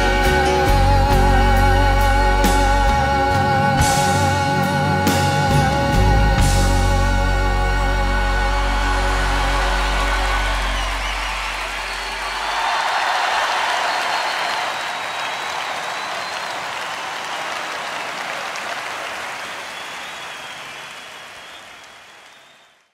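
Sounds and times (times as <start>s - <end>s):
concert crowd applause: 7.3s - 22.9s.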